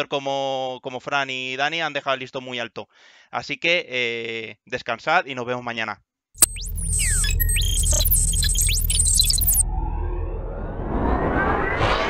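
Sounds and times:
rapid high beeps: 6.4 - 9.6
electronic falling and rising sweeps: 6.4 - 12.0
low rumbling drone: 6.5 - 12.0.

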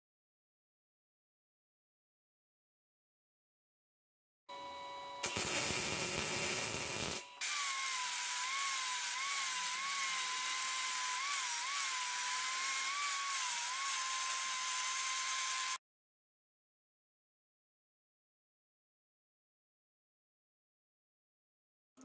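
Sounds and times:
angle grinder whine: 4.5 - 15.8.

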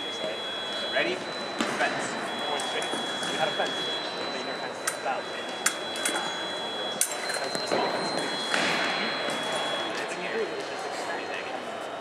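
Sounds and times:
high electronic scoring tones: 0.0 - 10.0
echoing chatter: 0.0 - 12.0.

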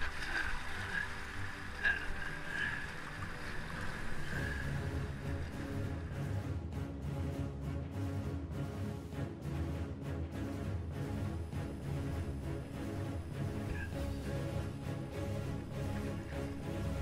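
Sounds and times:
kayak paddling: 0.0 - 6.7, 11.0 - 17.0
rushing river water: 0.0 - 17.0
background music with steady beat: 0.9 - 17.0.

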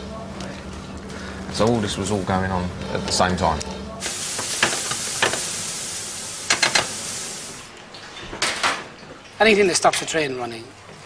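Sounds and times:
steady hiss: 4.0 - 7.8.

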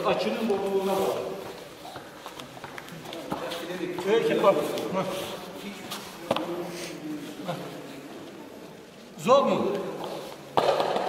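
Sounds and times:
bare feet on foam mats: 0.0 - 7.6.

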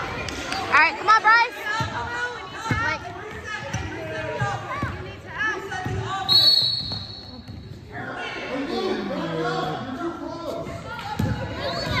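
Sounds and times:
referee's whistle blast: 6.3 - 7.3.

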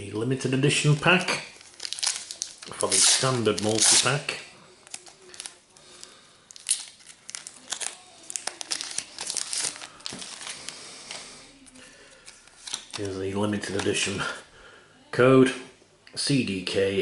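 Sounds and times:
card pack wrapper tearing: 0.9 - 10.8, 12.2 - 14.0.

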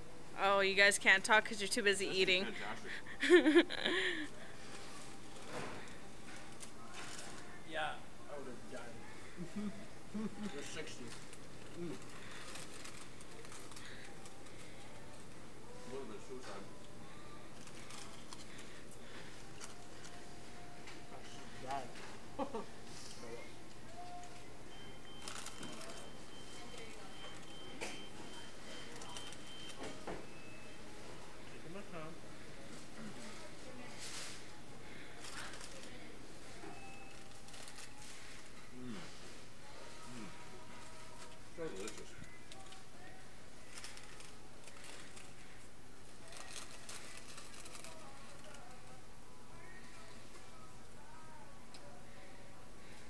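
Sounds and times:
paper bags crackling: 10.6 - 14.8, 17.6 - 20.2, 46.2 - 48.7.

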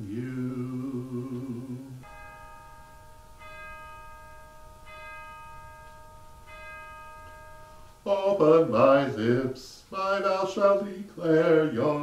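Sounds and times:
bell ringing: 1.5 - 9.3.

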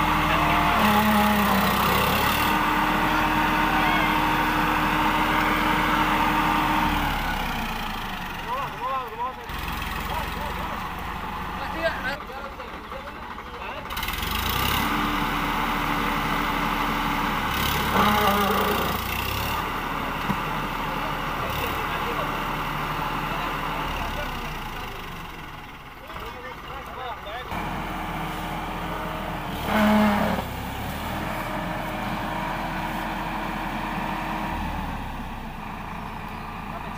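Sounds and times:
tractor diesel engine under load: 0.0 - 36.9
voices calling out: 0.0 - 36.9.

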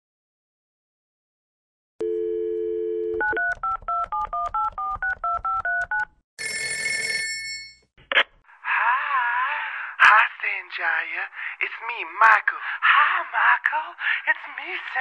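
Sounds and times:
touch-tone dialing beeps: 2.0 - 6.2
dial tone: 2.0 - 7.4
telephone bell ringing: 4.5 - 7.9.

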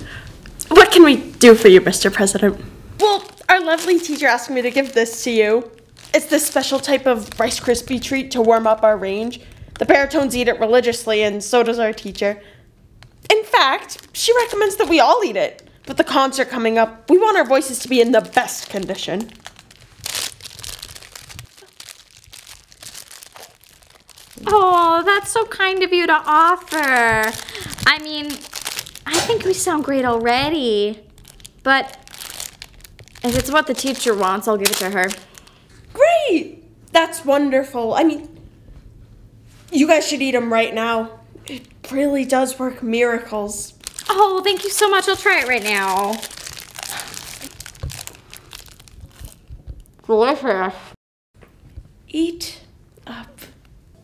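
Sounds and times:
plastic wrappers crinkling: 3.0 - 10.4, 13.0 - 35.7, 43.7 - 50.0.

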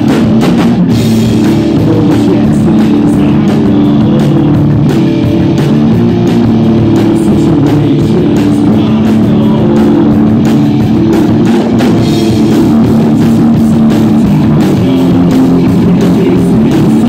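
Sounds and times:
bass guitar: 0.0 - 17.0
distorted electric guitar: 0.0 - 17.0
drum kit: 0.0 - 17.0.

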